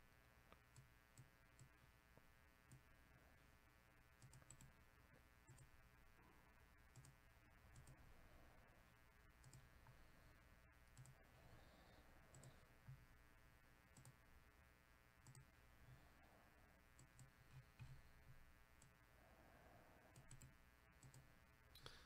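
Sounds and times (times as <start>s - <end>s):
computer mouse clicks: 0.5s - 1.8s, 2.7s - 2.9s, 4.2s - 4.8s, 5.4s - 5.8s, 6.9s - 8.0s, 9.4s - 10.1s, 10.8s - 11.2s, 12.2s - 13.1s, 13.9s - 14.2s, 15.2s - 15.6s, 16.9s - 19.0s, 20.1s - 22.0s.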